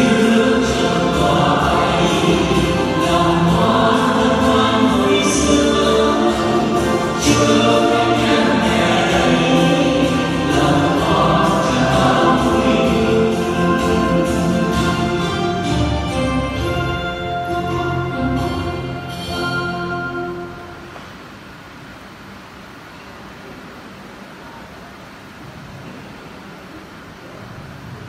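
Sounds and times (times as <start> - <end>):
choir singing: 0.0 - 20.8
instrumental accompaniment: 0.0 - 21.0.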